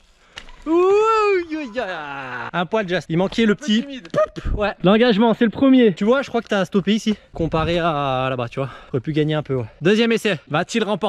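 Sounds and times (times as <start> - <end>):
man calling out: 3.5 - 5.3.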